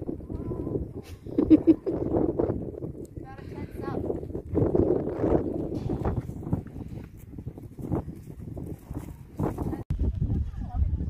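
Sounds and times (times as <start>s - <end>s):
hoofbeats in sand: 2.6s - 9.8s
horse breathing: 5.6s - 8.4s.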